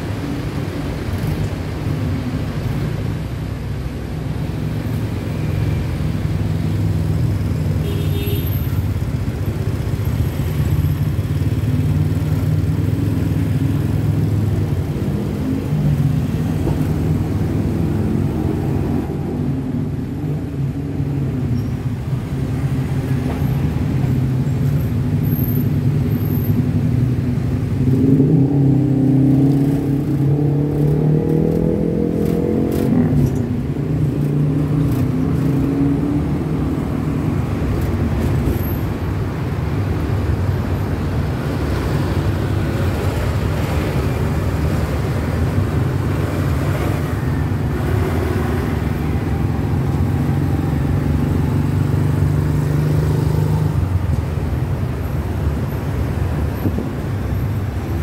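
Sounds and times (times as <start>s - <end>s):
motorcycles and cars passing: 0.0s - 58.0s.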